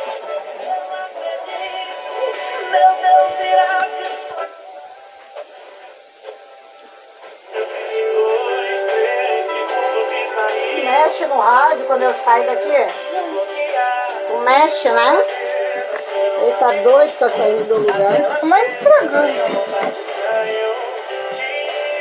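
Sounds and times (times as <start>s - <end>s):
music with singing voice: 0.0s - 22.0s.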